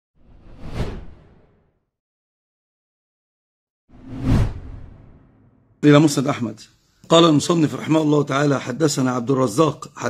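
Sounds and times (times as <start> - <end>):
whoosh sound effect: 3.9 - 5.6.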